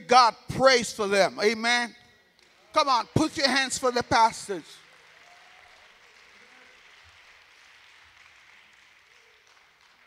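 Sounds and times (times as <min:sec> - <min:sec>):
congregation applauding: 0:02.3 - 0:10.0.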